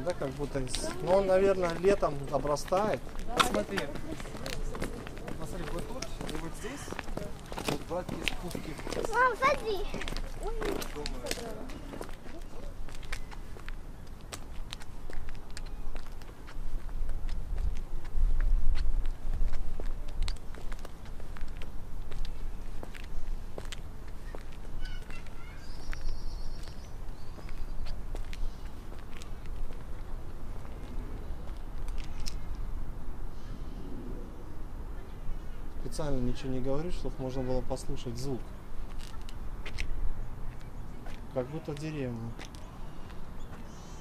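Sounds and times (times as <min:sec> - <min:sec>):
footsteps on a path: 0:00.0 - 0:32.9, 0:38.3 - 0:44.0
wind rumbling on microphone: 0:12.8 - 0:24.8, 0:25.9 - 0:35.8.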